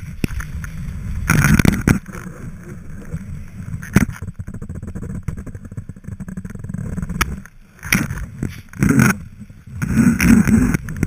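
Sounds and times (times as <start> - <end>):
skis scraping over snow: 0.0 - 11.0.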